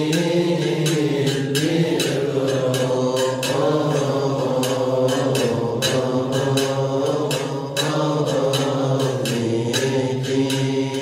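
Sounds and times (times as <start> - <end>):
men chanting: 0.0 - 11.0
sharp regular strikes: 0.0 - 11.0.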